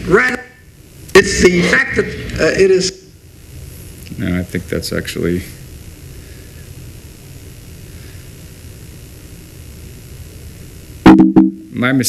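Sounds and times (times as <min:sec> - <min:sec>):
even hiss: 0:00.0 - 0:12.0.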